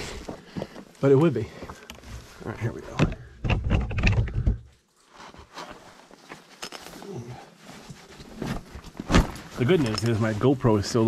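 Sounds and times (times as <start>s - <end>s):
camera handling rubbing and bumping: 2.9s - 4.7s.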